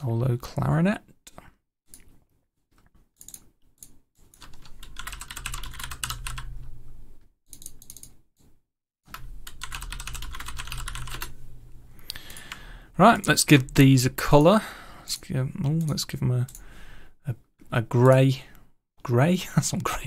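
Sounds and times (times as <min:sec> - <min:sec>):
fast keyboard typing: 0:04.3 - 0:06.5, 0:09.1 - 0:11.4.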